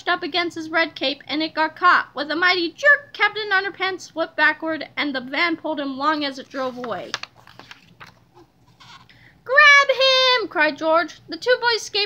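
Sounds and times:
book page turning: 6.4 - 9.1.

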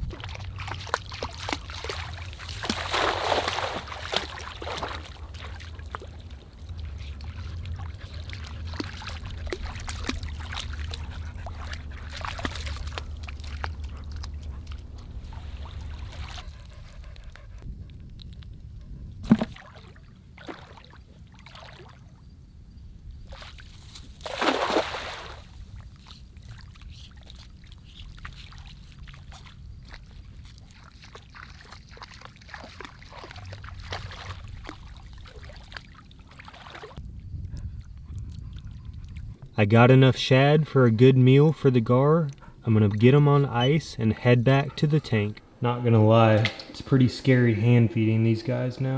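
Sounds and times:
net splashing onto water: 0.0 - 6.2, 23.3 - 25.6
water dripping: 0.0 - 16.4
water sloshing and splashing: 0.0 - 17.6, 19.2 - 22.3, 23.2 - 39.5.

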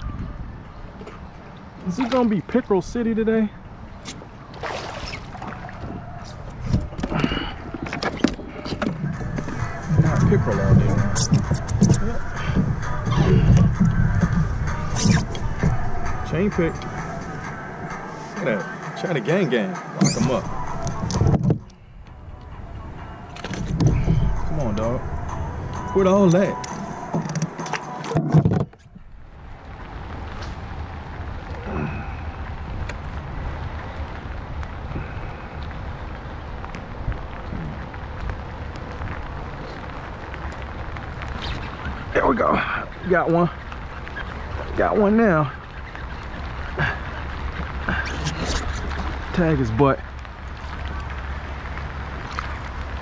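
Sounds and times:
wind rumble on microphone: 0.0 - 18.2, 20.0 - 53.0
rain falling on water: 1.3 - 18.4, 28.8 - 53.0
low rumble: 8.4 - 18.2, 20.2 - 27.2.

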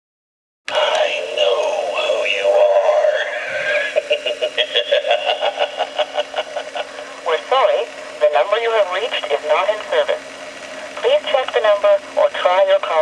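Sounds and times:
eerie warbling voice-like sound: 0.7 - 7.9.

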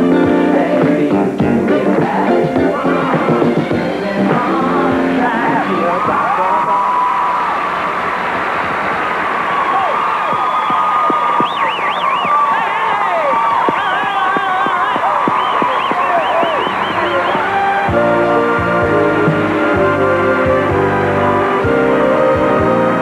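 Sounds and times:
audience screaming and whooping: 5.4 - 18.8
audience clapping: 7.8 - 18.0.

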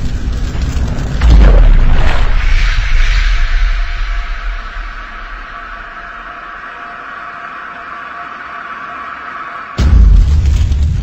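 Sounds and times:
low rumble of boom: 0.0 - 6.9, 9.8 - 11.0
hissing drone: 1.4 - 9.8.

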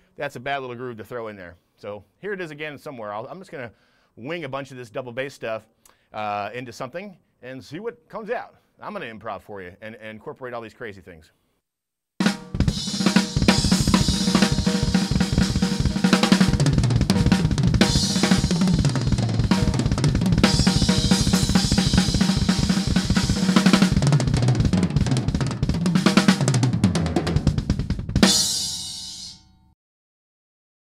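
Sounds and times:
drum kit solo: 12.2 - 29.5
cymbal crash ringing: 28.3 - 29.5.

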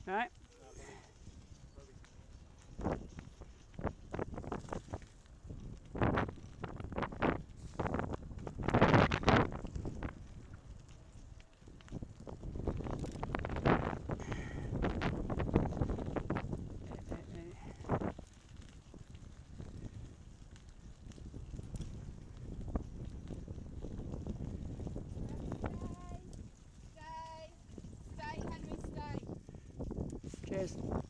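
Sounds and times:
bicycle rattling and knocking: 0.0 - 31.0
wind noise on microphone: 0.0 - 31.0.

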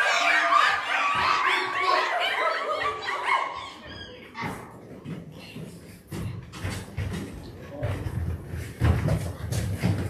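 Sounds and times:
children making monkey calls: 0.0 - 4.8.

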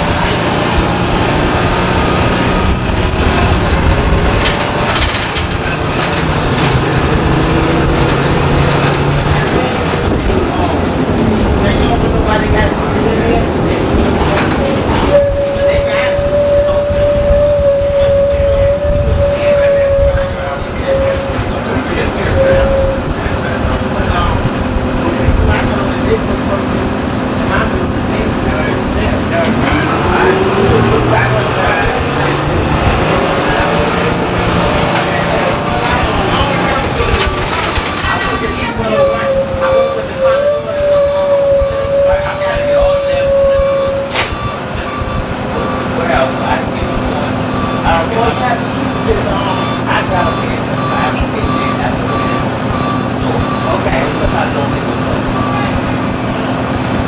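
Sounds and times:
bus engine rumble: 0.0 - 57.0.

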